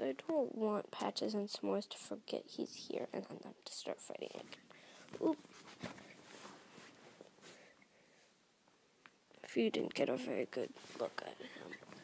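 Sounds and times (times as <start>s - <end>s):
faint rustling: 4.1s - 12.0s.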